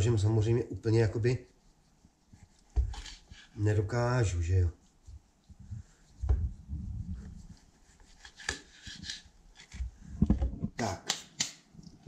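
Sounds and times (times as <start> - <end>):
cutting board thumps: 2.8 - 3.1.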